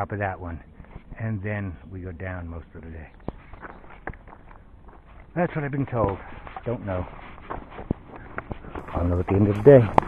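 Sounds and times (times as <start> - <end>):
faint background noise: 0.0 - 10.0
footsteps on a trail: 3.0 - 10.0.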